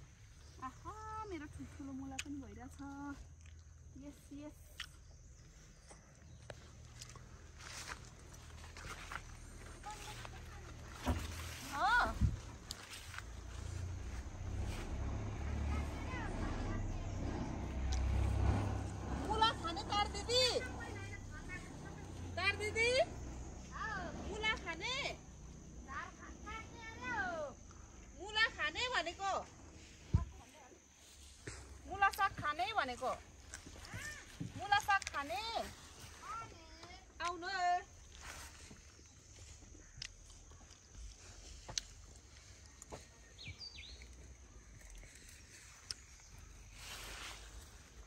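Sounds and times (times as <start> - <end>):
leafy greens rustling: 6.5 - 24.1, 40.8 - 48.0.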